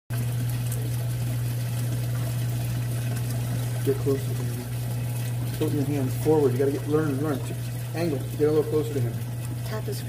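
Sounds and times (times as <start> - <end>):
low pump hum: 0.1 - 10.0
water trickling: 0.1 - 10.0.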